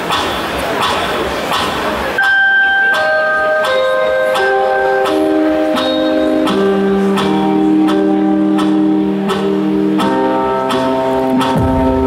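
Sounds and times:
audience noise: 0.0 - 12.0
keyboard playing sustained notes: 2.2 - 12.0.

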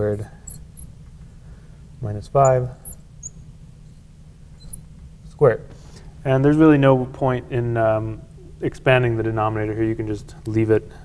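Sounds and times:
marker squeaking on glass: 0.4 - 1.0, 2.4 - 4.9.

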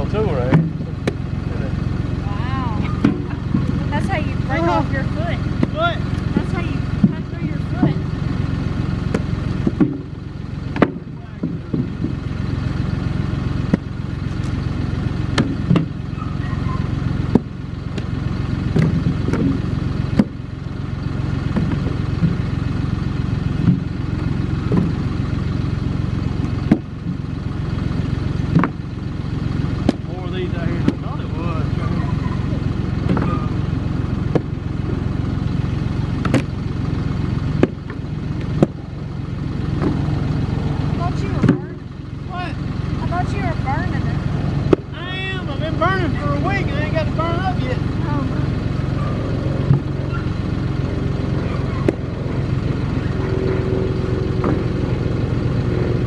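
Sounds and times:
tractor engine idling: 0.0 - 56.0.

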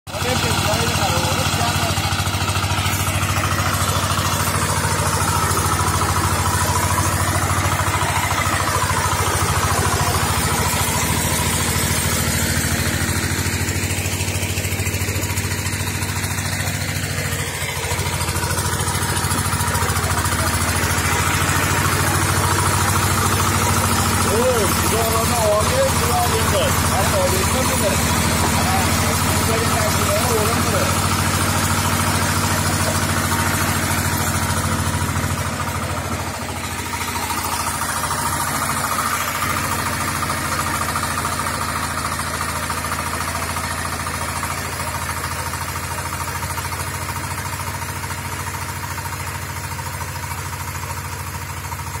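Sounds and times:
tractor engine running under load: 0.1 - 52.0.

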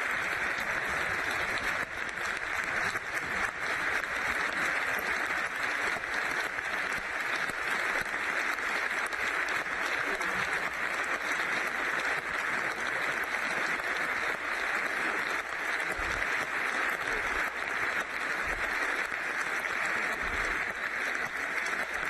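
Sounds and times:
large crowd applauding: 0.0 - 22.0.

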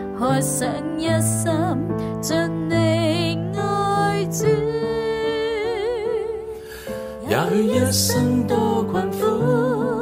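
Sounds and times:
soft musical accompaniment: 0.0 - 10.0
person singing with vibrato: 3.4 - 10.0.

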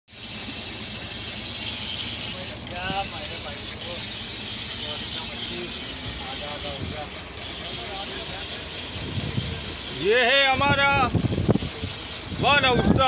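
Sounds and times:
sea water around a boat: 0.1 - 13.0
wind: 0.1 - 13.0.

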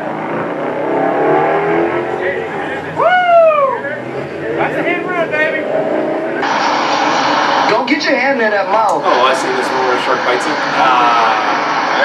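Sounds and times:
car engine accelerating: 0.0 - 8.1, 8.9 - 12.0.

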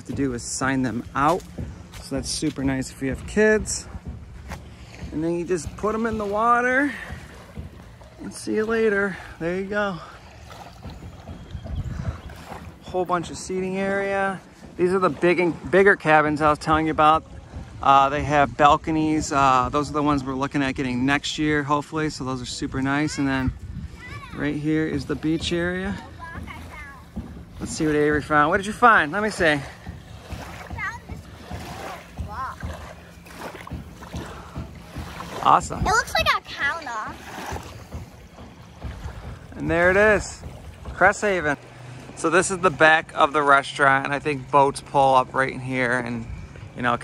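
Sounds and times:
low irregular rumbles: 0.0 - 47.0
small waves lapping on shore: 0.0 - 47.0
wind buffeting microphone: 0.0 - 47.0.

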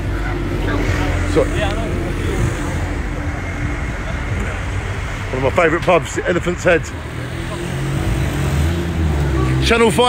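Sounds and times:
bus engine running: 0.0 - 10.0
road traffic noise: 0.0 - 10.0.

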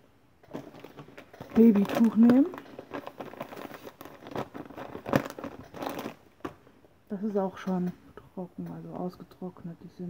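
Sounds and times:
plastic packaging crinkling: 0.4 - 6.7.

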